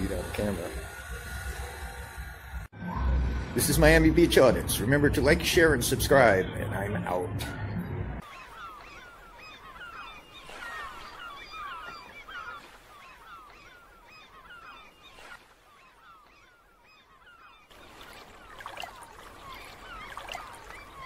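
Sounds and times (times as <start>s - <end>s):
flock of birds calling: 0.0s - 2.7s, 8.2s - 21.0s.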